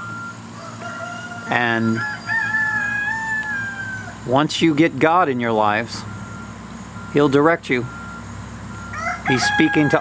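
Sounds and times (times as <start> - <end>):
rooster crowing: 0.5 - 4.2, 8.7 - 10.0.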